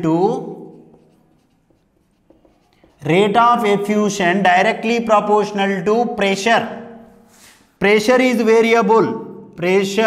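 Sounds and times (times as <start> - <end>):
marker writing on whiteboard: 0.0 - 3.9.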